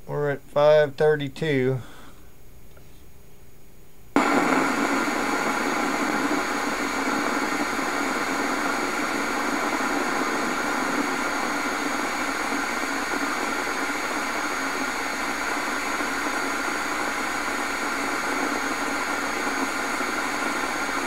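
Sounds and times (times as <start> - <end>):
coil static hiss with buzz: 0.0 - 21.0.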